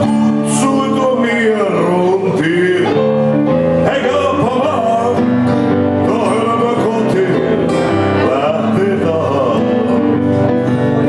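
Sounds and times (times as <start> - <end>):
keyboard: 0.0 - 11.0
man singing: 0.0 - 11.0
strummed acoustic guitar: 0.0 - 11.0.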